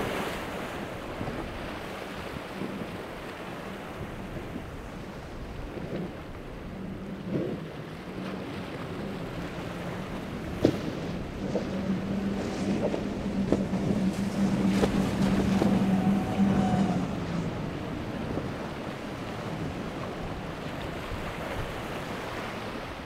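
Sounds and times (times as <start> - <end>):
boat outboard engines at speed: 0.0 - 23.0
wind buffeting microphone: 0.0 - 23.0.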